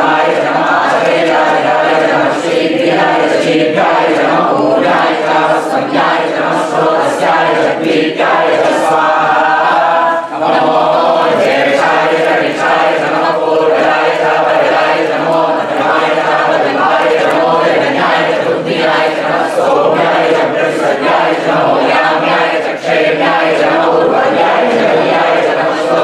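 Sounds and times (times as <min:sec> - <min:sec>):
group chanting in unison: 0:00.0 - 0:26.0.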